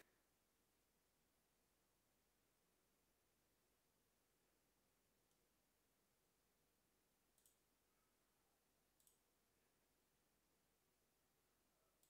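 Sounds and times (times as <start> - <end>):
faint mouse clicks: 7.3 - 7.8, 8.8 - 9.4.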